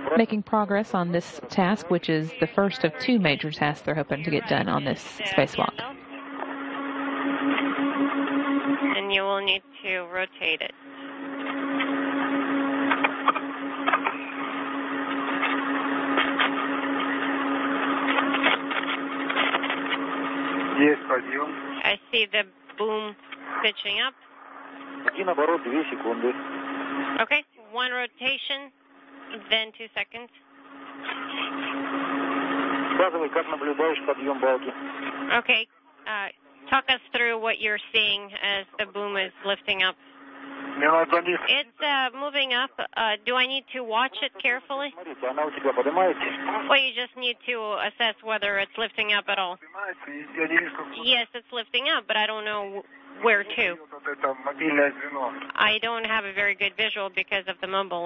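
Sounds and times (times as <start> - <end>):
radio hiss: 0.0 - 6.0, 23.4 - 26.4, 31.0 - 35.4, 40.6 - 42.0, 44.0 - 47.0, 49.2 - 51.2, 52.2 - 56.6
radio static hiss: 0.0 - 6.2, 7.3 - 27.4, 30.8 - 42.7, 43.3 - 47.6, 48.4 - 57.8
constant low hum: 0.0 - 58.0.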